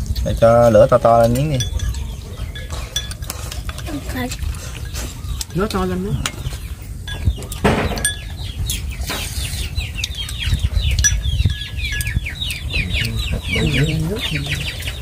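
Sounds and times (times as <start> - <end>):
poultry peeping: 0.0 - 15.0.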